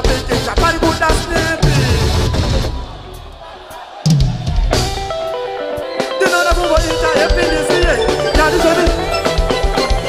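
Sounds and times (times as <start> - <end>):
live band with drum kit: 0.0 - 10.0.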